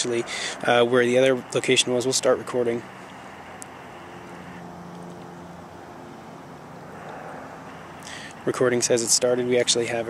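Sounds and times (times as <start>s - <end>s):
distant traffic hum: 0.0s - 10.0s.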